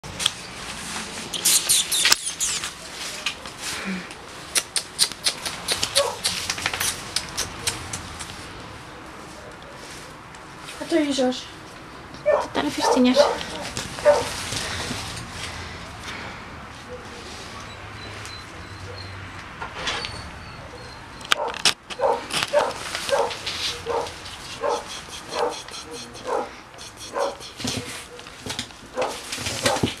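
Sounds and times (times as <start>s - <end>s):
dog claws clicking on tiles: 4.6s - 8.4s
small dog whining: 23.9s - 27.8s.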